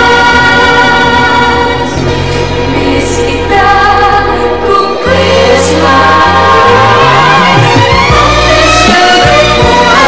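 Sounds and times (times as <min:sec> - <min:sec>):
choir singing long notes: 0:00.0 - 0:10.0
musical accompaniment: 0:00.0 - 0:10.0.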